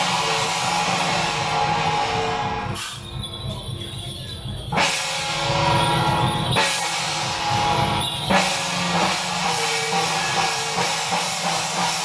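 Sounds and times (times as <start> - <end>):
gong: 0.0 - 3.7, 4.6 - 12.0
cymbals clashing: 0.0 - 12.0
drum beating: 4.8 - 12.0.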